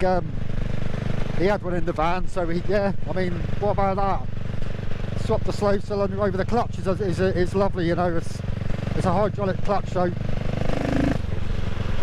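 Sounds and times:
motorcycle engine running steadily: 0.0s - 12.0s.

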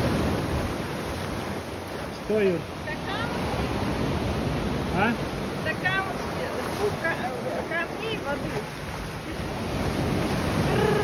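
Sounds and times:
surf washing on shore: 0.0s - 11.0s.

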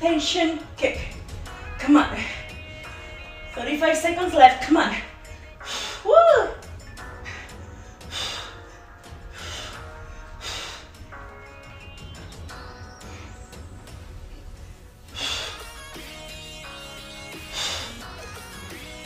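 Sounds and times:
background music: 0.0s - 19.0s
sharp exhaled breaths: 5.0s - 11.9s, 14.6s - 16.2s, 17.3s - 18.4s.

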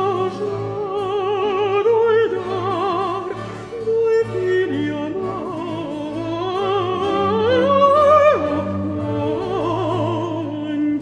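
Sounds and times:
countertenor singing opera aria: 0.0s - 11.0s
orchestra accompaniment: 0.0s - 11.0s.

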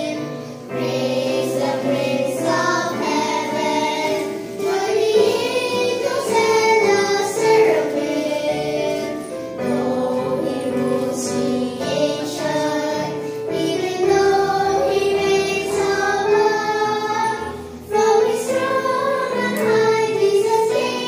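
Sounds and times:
girls singing together: 0.0s - 21.0s.

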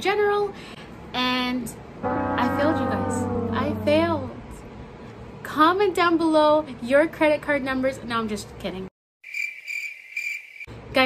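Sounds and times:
crickets chirping: 9.2s - 10.7s.

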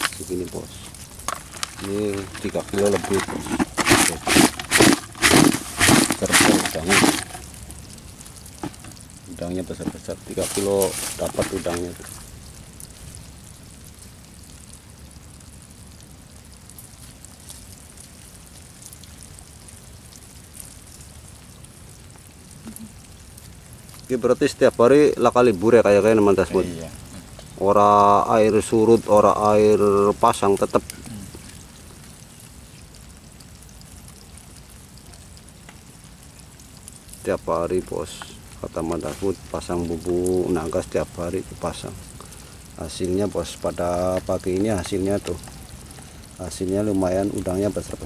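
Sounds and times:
light ticks and rustles: 0.0s - 48.0s
low rumble and hiss: 0.0s - 48.0s.

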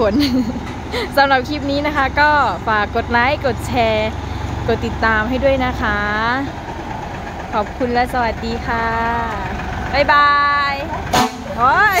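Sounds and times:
truck diesel engine idling: 0.0s - 12.0s.

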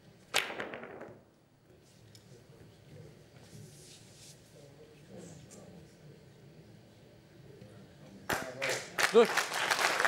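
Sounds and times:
billiard ball clicks: 0.4s - 1.3s
cue striking ball: 0.4s - 1.3s.

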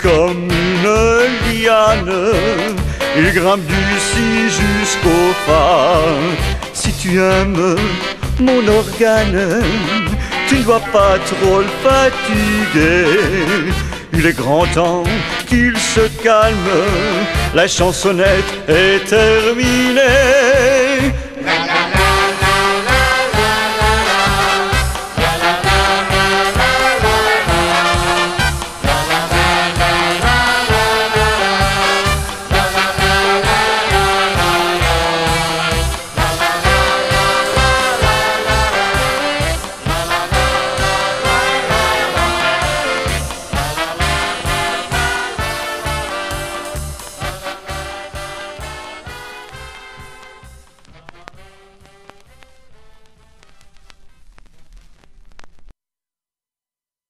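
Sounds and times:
swing band with brass: 0.0s - 53.2s.

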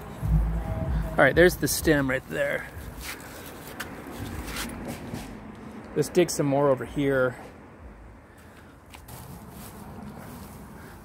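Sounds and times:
hands rustling wood chip mulch: 9.0s - 11.0s.

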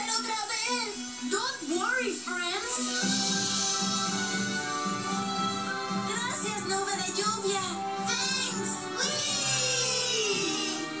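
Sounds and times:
cartoon music from television: 0.0s - 11.0s.

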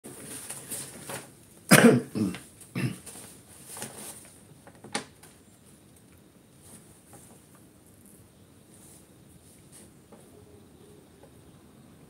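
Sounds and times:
man coughing: 1.7s - 3.0s.

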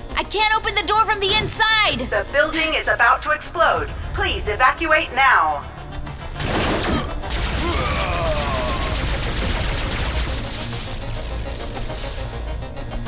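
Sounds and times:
background music: 0.0s - 13.0s.

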